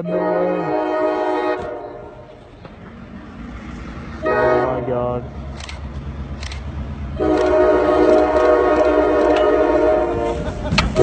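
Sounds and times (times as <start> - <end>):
locomotive air horn blast: 0.0 - 2.4, 4.2 - 5.1, 7.2 - 11.0
low train rumble: 0.0 - 11.0.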